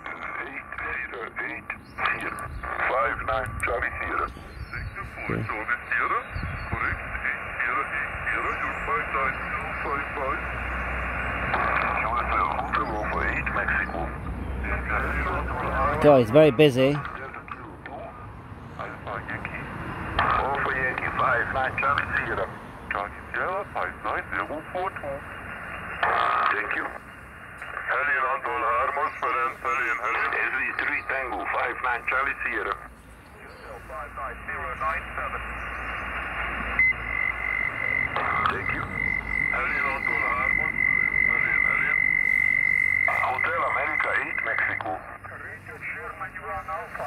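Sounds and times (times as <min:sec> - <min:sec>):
strong radio voice: 0:00.0 - 0:10.6, 0:11.3 - 0:47.0
faint thin radio voices: 0:00.0 - 0:47.0
radio hiss: 0:00.0 - 0:47.0
steady high whistle: 0:36.8 - 0:43.5.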